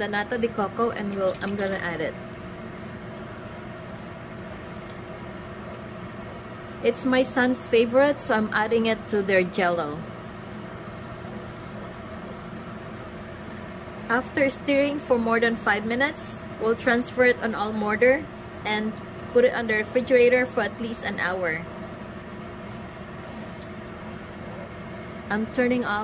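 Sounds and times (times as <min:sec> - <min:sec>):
steady background hum: 0:00.0 - 0:26.0.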